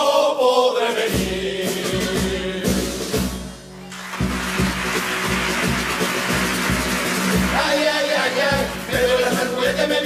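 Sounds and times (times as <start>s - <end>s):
carnival band playing: 0.0s - 10.0s
snare drum: 1.1s - 10.0s
bass drum beat: 4.2s - 10.0s.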